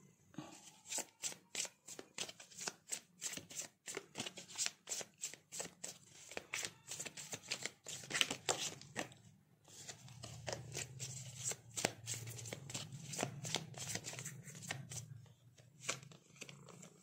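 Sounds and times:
cards being shuffled: 0.7s - 9.1s, 9.7s - 15.0s, 15.8s - 17.0s.

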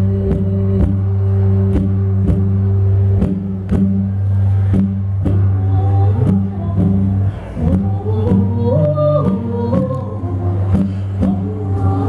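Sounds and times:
hurdy-gurdy drone: 0.0s - 12.0s
plucked cittern strings: 0.0s - 12.0s.

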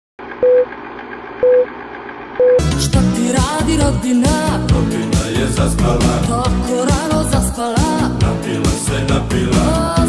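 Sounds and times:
short steady beep: 0.4s - 0.7s, 1.4s - 1.7s, 2.4s - 2.7s.

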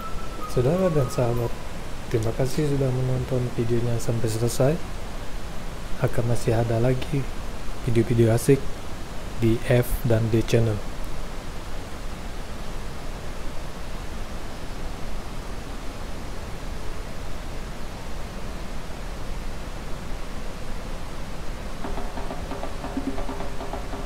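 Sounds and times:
waterfall rushing: 21.8s - 24.0s.

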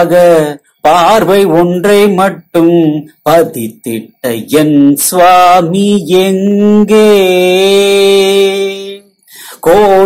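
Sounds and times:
man singing chant-like: 0.0s - 10.0s.

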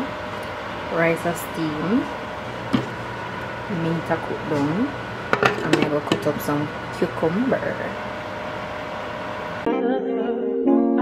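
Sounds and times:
piano background music: 9.7s - 11.0s.

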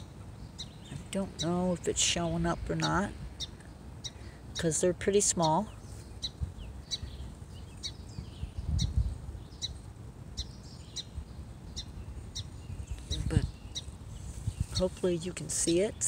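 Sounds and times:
low rumble on microphone: 0.0s - 16.0s
small bird chirping: 0.0s - 16.0s.

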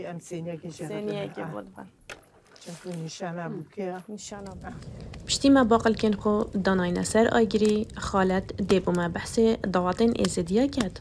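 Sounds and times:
woman talking: 0.0s - 1.9s, 2.6s - 11.0s.

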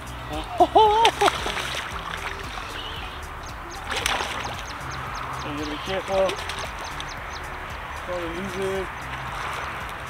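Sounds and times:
fish splashing at water surface: 0.7s - 10.0s.

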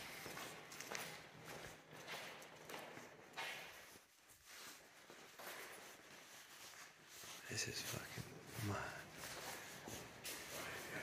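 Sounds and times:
footsteps on concrete floor: 0.0s - 11.0s.

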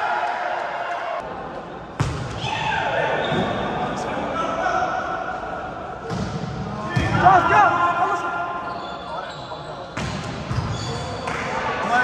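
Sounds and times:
sneaker squeaks on court floor: 8.6s - 11.4s.

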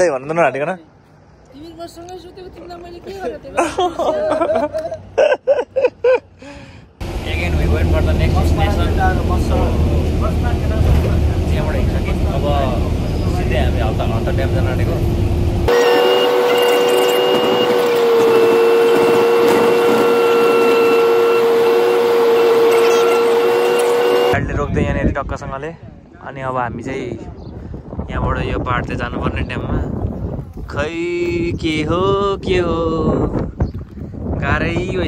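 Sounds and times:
bus engine rumble: 0.8s - 24.4s
whine of held tones: 15.7s - 24.3s.

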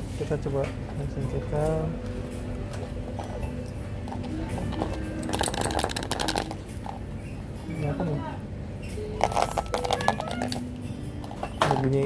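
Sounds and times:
faint background music: 0.0s - 12.0s
toy car rattling in box: 4.6s - 7.0s, 9.2s - 10.6s.

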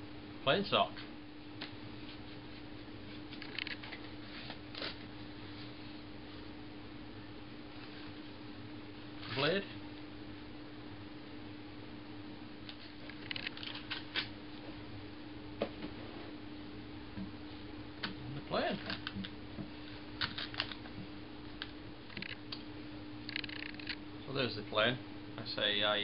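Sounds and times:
steady low hum: 0.0s - 26.0s
paper packaging rustling: 13.1s - 14.3s.

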